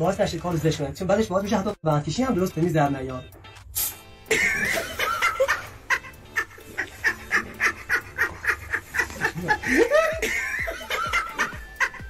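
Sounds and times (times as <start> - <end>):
person laughing in breathy pulses: 6.4 - 12.0.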